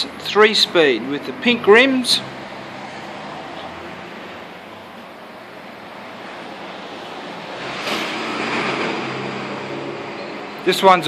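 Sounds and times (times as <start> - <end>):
steady rushing noise: 2.6 - 10.2.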